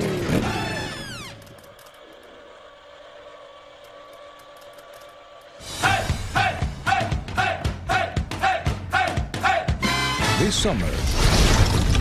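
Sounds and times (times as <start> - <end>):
upbeat music: 5.6 - 10.8.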